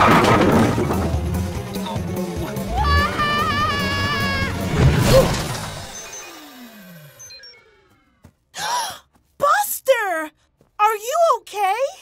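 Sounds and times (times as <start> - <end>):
music: 0.1 - 6.1
falling tones: 2.6 - 8.2
loud cartoon crash: 4.0 - 6.1.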